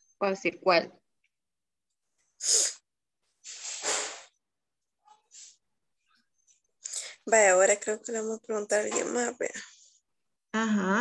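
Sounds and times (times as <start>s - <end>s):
person hissing breathily: 2.4s - 2.8s.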